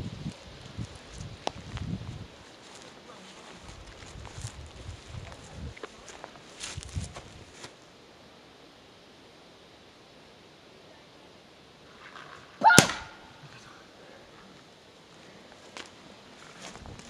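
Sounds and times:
paintball marker shot: 12.7s - 13.2s.

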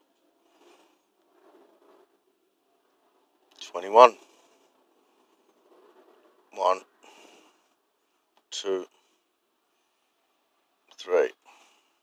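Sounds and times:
man speaking: 3.6s - 4.2s, 6.6s - 6.9s, 8.5s - 8.9s, 10.9s - 11.4s.

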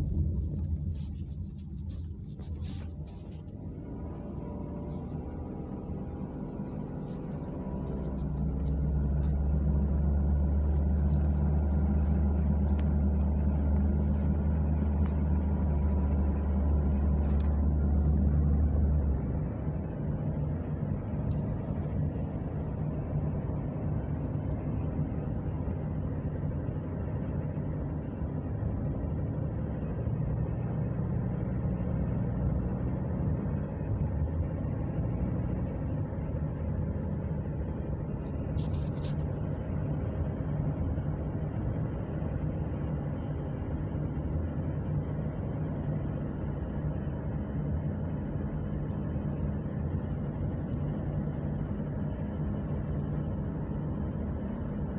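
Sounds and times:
car engine and road drone: 0.0s - 54.9s.

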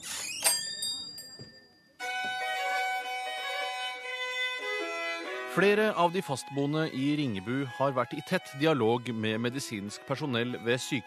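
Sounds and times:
slow violin melody: 2.0s - 11.0s.

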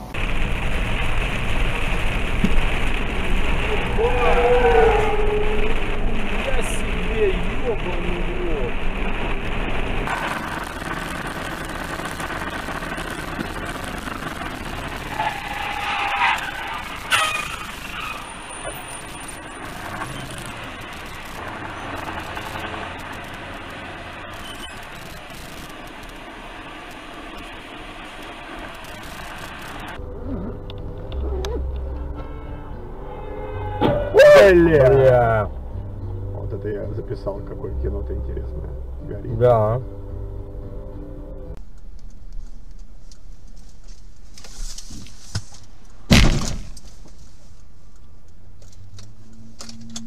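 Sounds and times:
low engine drone: 0.0s - 44.2s, 47.7s - 50.0s
road and engine noise in vehicle: 0.0s - 50.0s.

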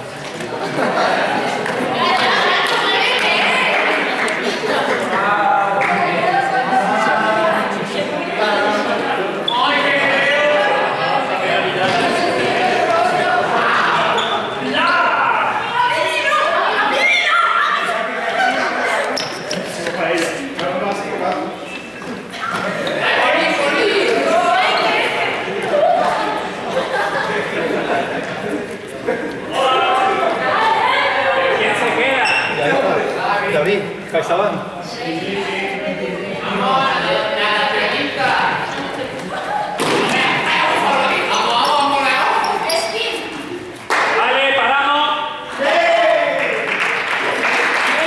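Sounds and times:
voices shouting in a hall: 0.0s - 48.0s
players calling out: 0.1s - 46.5s.

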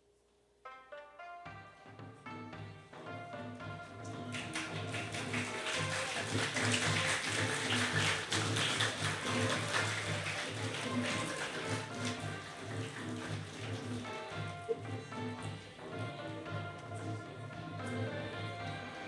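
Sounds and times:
instrumental music: 0.6s - 19.0s
audience applauding: 3.5s - 19.0s.

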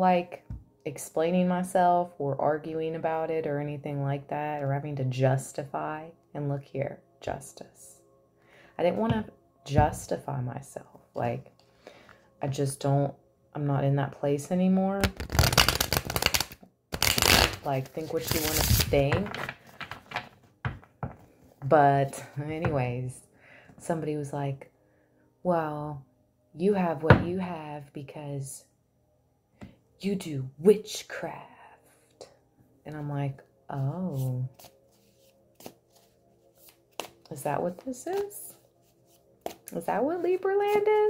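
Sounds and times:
cards being riffle-shuffled: 15.0s - 20.4s, 34.1s - 39.7s.

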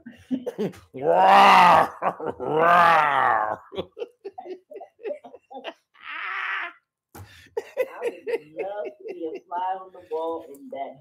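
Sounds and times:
man imitating bear roar: 1.0s - 3.8s.

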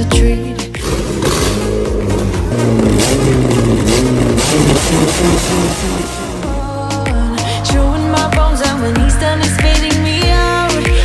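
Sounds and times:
pop music: 0.0s - 11.0s
car engine revving: 0.6s - 7.4s.

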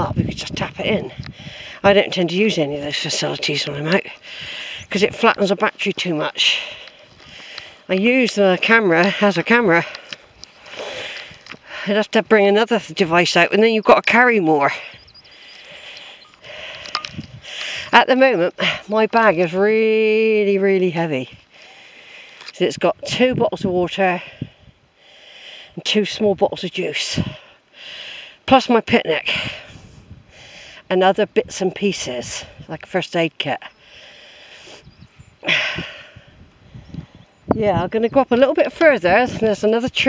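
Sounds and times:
faint bird chirps: 14.7s - 16.6s, 34.7s - 35.4s.

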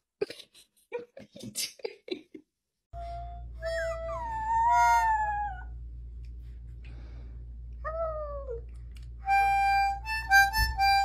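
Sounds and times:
low steady hum: 3.0s - 11.0s
pet howling: 4.1s - 5.8s.

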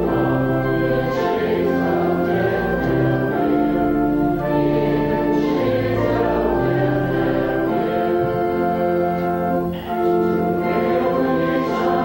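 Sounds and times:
congregation singing a hymn: 0.0s - 12.0s
organ: 0.0s - 12.0s.

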